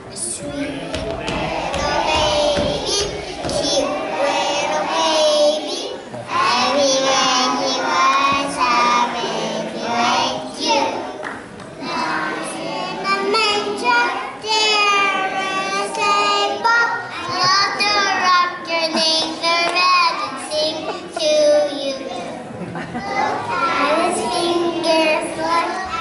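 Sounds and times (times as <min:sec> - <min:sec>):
toddlers singing: 0:00.0 - 0:26.0.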